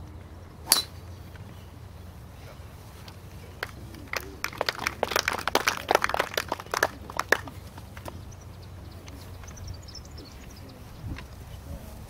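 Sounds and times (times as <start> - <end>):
spectators clapping: 3.6 - 8.2.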